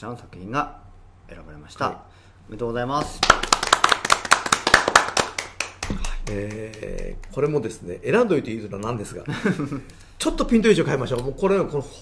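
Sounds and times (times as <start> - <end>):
people clapping: 3.0 - 7.8.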